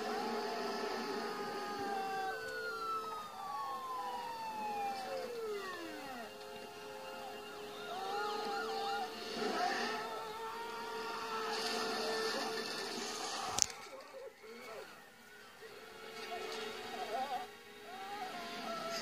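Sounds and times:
sirens wailing: 0.0 - 19.0.

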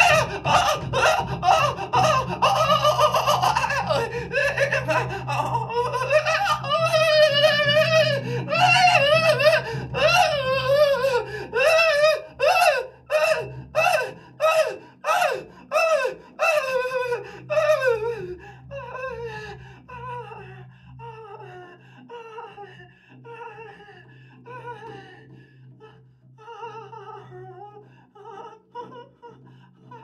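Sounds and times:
man vocalising through a microphone: 0.0 - 17.8.

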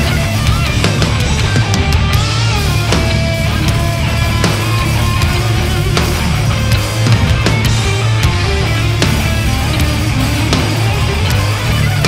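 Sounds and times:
live heavy rock band: 0.0 - 12.0.

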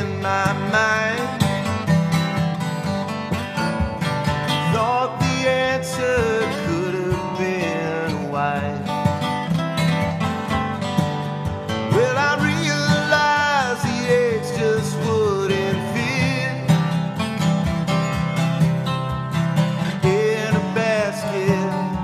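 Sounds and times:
acoustic guitar: 0.0 - 22.0
live country-folk band: 0.0 - 22.0.

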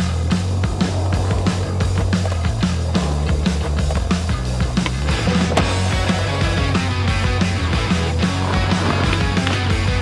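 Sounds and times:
rock music: 0.0 - 10.0.

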